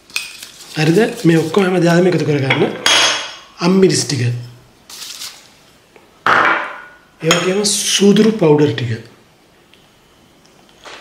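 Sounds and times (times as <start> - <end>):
man speaking: 0.8 - 2.8, 3.6 - 4.6, 7.2 - 9.1.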